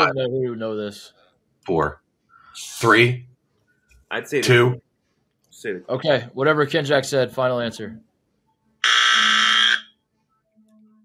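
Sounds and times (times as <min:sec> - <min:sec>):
game-show buzzer: 0:08.8 - 0:09.9.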